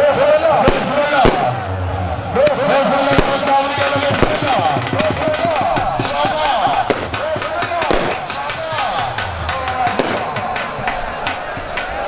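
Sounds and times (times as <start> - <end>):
crowd voices: 0.0 - 12.0
music: 0.0 - 12.0
sharp cracks: 3.1 - 11.8.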